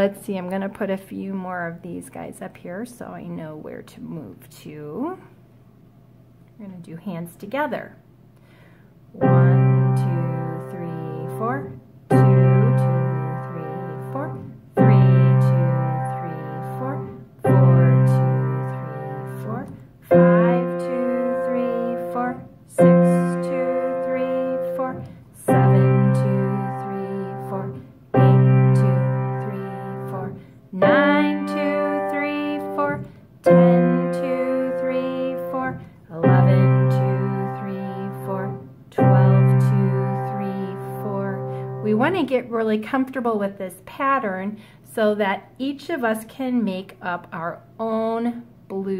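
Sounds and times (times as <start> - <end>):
slow blues piano chords: 9.2 - 42.1.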